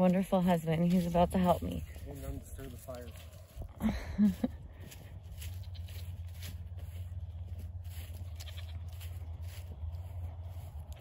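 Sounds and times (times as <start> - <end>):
soft footsteps on grass: 0.0 - 11.0
steady low rumble: 0.0 - 11.0.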